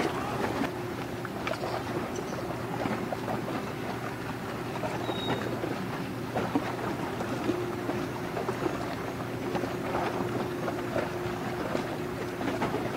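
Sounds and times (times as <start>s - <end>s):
bow wave crackling on water: 0.0s - 12.9s
ship engine drone: 0.0s - 12.9s.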